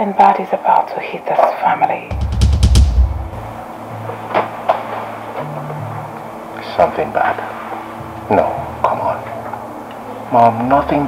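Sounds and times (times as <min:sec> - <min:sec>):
deep booming drum hit: 0:02.1 - 0:03.6
low bass drone: 0:02.1 - 0:03.6.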